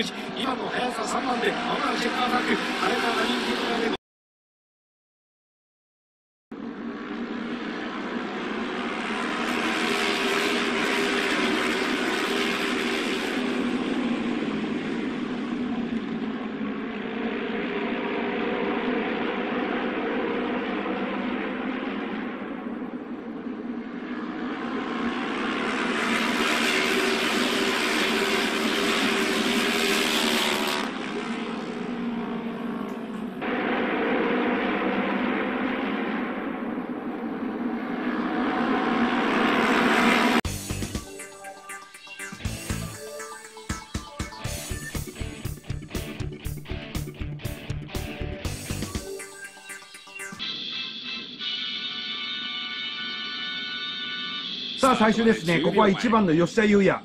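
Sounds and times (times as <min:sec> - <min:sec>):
racing motorcycle engines passing: 0:00.0 - 0:03.9, 0:06.6 - 0:40.4.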